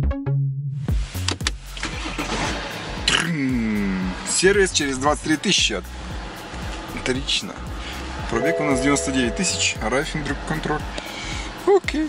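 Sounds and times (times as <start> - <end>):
car engine starting and idling: 1.4 - 3.2.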